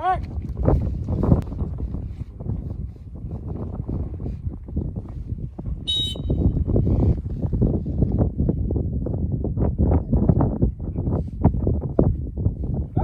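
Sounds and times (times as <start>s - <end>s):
wind rumbling on microphone: 0.0s - 13.0s
shrill whistle blast: 5.9s - 6.5s.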